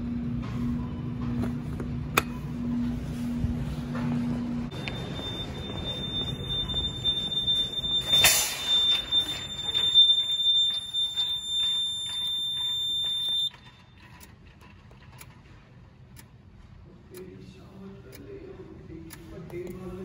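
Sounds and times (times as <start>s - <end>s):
high-pitched fire alarm tone: 4.7s - 13.9s.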